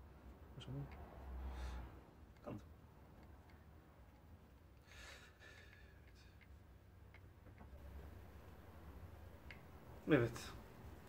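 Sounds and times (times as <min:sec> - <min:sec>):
low hum: 0:06.2 - 0:11.0.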